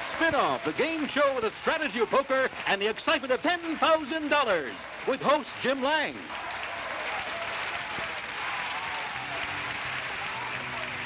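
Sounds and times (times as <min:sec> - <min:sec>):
audience applause: 0:00.0 - 0:11.0.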